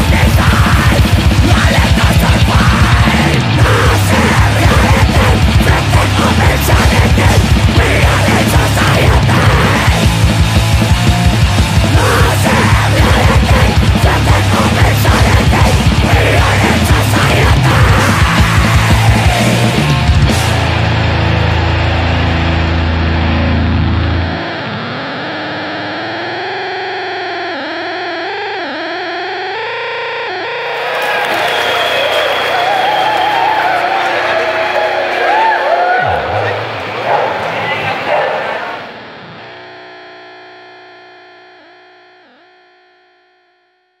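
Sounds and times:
heavy distorted band chord: 0.0s - 27.4s
electric guitar feedback: 0.0s - 44.0s.

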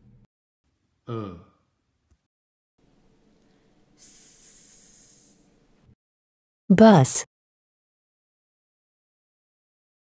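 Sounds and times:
person hissing sss sound: 4.0s - 5.5s.

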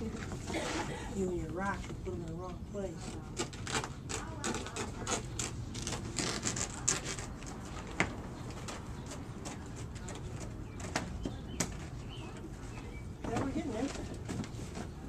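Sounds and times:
plastic pond liner crackling: 3.3s - 12.3s.

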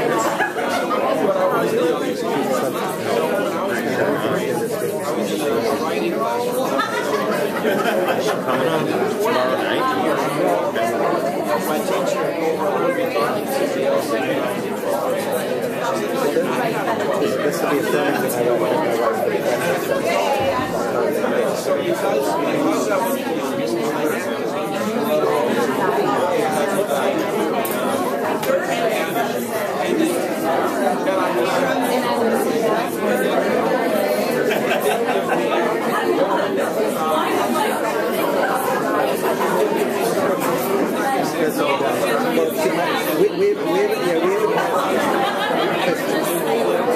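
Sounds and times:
crowd chatter: 0.0s - 46.9s.

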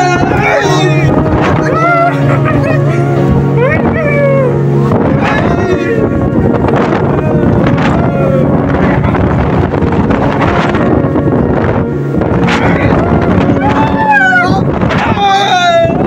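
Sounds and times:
people's voices: 0.0s - 16.0s
speedboat running fast: 0.0s - 16.0s
wind buffeting microphone: 0.0s - 16.0s.

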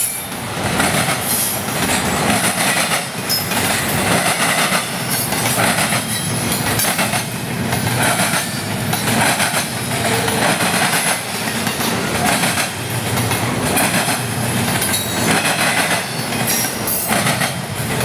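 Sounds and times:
train wheels rumbling on rail: 0.0s - 18.0s
wheels clacking over track: 0.0s - 18.0s.

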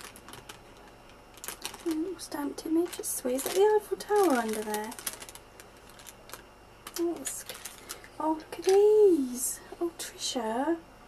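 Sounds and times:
paper bag crinkling: 0.0s - 9.4s.

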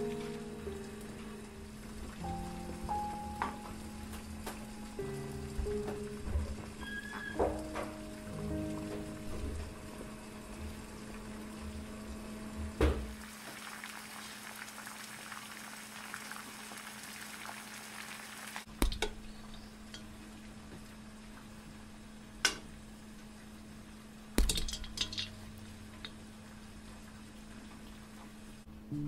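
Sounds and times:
background music: 0.0s - 10.2s
water boiling and bubbling: 0.0s - 28.7s.

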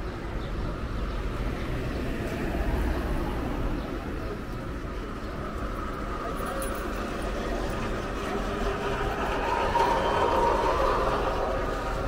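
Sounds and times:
steady hum of traffic: 0.0s - 12.0s
vehicle passing by: 7.9s - 12.0s.

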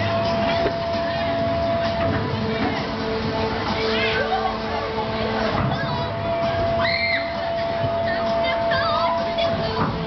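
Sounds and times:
crowd voices: 0.0s - 10.0s
ride machinery rumbling and whining: 0.0s - 10.0s.

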